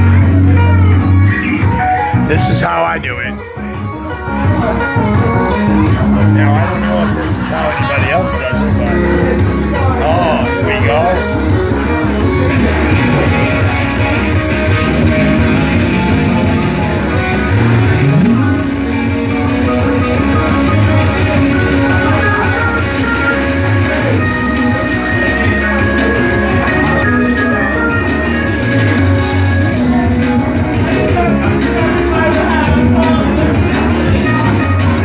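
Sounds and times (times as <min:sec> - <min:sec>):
rock music with guitar: 0:00.0 - 0:35.0.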